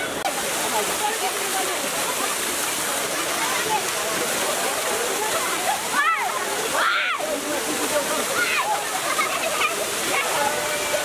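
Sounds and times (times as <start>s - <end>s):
crowd shouting and chatter: 0.0s - 11.0s
water gushing onto street: 0.0s - 11.0s.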